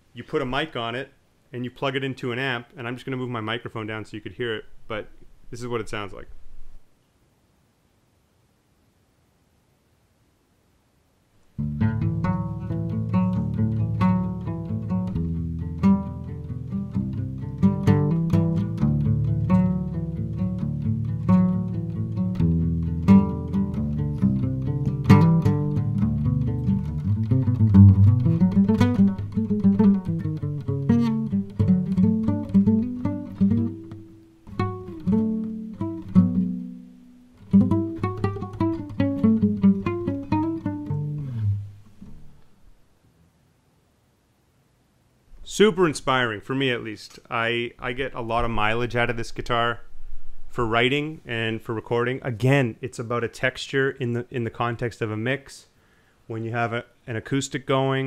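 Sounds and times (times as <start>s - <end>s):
acoustic guitar fingerpicked: 11.6s - 42.8s.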